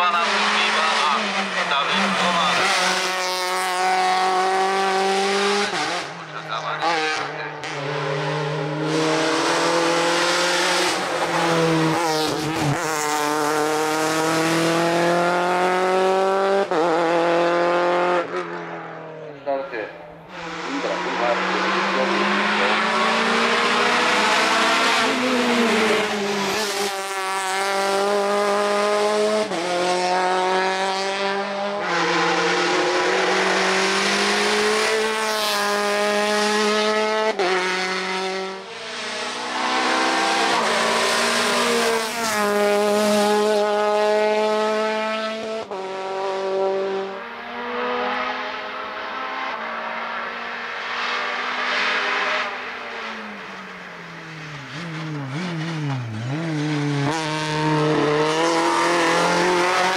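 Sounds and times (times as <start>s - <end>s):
race car engine at full throttle: 0.0s - 59.9s.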